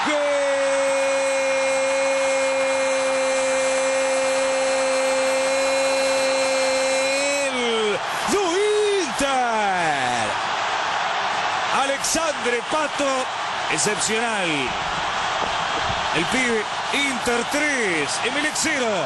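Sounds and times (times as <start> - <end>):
stadium crowd noise: 0.0 - 19.0.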